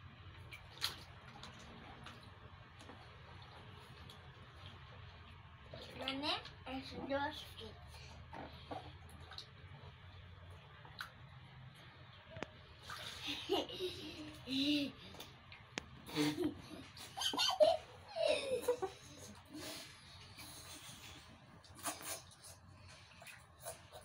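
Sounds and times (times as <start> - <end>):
water pouring and splashing: 0.2 - 11.8, 12.6 - 16.0
child laughing: 13.2 - 15.1, 16.1 - 19.4.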